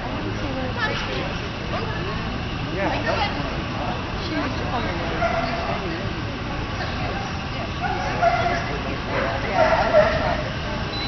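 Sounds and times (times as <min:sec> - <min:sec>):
people talking: 0:00.0 - 0:11.0
dog barking and yipping: 0:05.2 - 0:05.7, 0:07.8 - 0:10.6.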